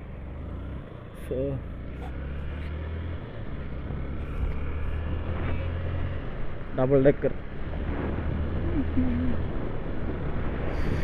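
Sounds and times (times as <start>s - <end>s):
motorcycle engine drone: 0.0s - 11.0s
road noise: 0.0s - 11.0s.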